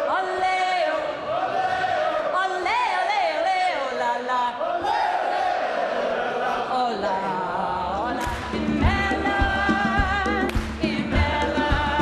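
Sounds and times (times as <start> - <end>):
crowd singing long notes: 0.0 - 12.0.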